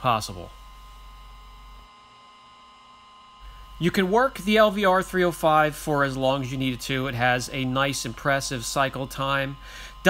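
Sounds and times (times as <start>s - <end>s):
electrical hum and hiss: 0.0s - 10.0s
thin steady tones: 3.4s - 10.0s.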